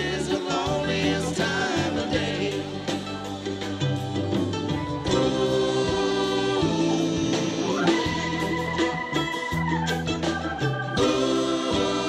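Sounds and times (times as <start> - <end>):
voices singing harmony: 0.0 - 3.6, 5.0 - 9.8, 10.5 - 12.0
live band playing chord: 0.0 - 12.0.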